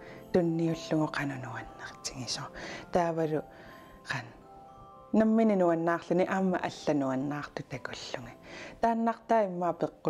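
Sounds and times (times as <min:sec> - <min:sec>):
faint music: 0:00.0 - 0:10.0
woman talking: 0:00.3 - 0:04.4, 0:05.2 - 0:10.0.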